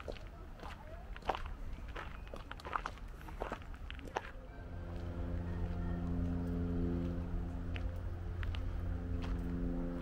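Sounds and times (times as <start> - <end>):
footsteps walking: 0.0 - 10.0.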